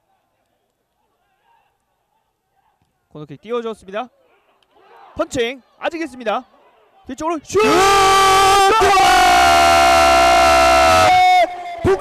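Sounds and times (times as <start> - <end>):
commentator shouting: 7.1 - 12.0.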